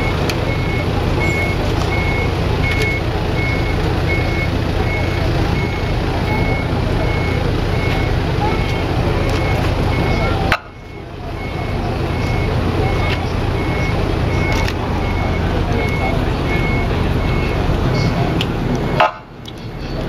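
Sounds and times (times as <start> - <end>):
engine running: 0.0 - 20.0
reversing alarm beeps: 0.0 - 20.0.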